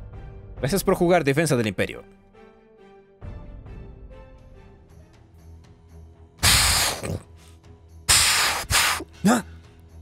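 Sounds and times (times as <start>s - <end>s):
loud hissing blast: 6.4s - 7.1s, 8.1s - 9.0s
startled vocal huh: 6.4s - 7.3s.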